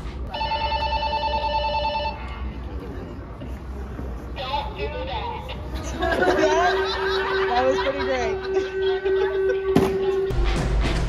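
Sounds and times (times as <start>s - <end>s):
crowd voices: 0.0s - 10.3s.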